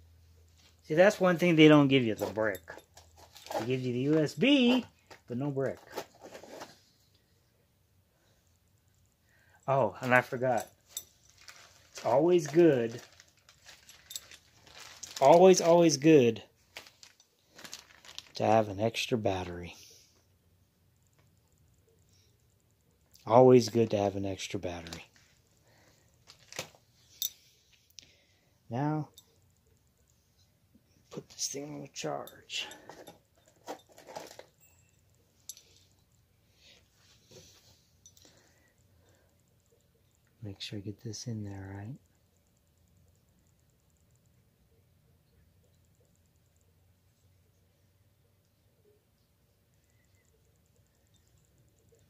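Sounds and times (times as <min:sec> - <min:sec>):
faint handling noise: 0:00.3 - 0:07.4, 0:09.6 - 0:20.3, 0:22.0 - 0:28.0, 0:29.0 - 0:40.4.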